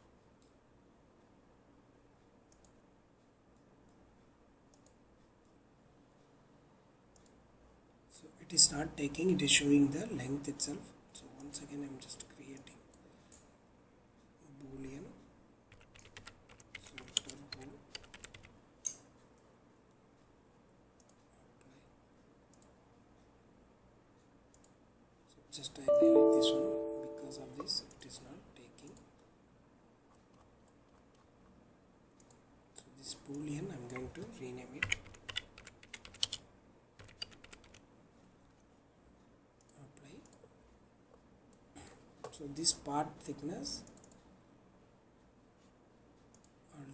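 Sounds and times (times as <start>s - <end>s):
keyboard key clicks: 15.7s - 19.0s, 37.0s - 37.8s.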